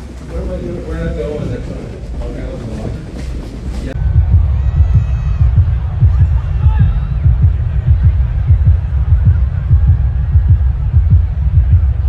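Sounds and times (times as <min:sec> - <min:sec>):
deep pulsing bass: 0:04.0 - 0:12.0.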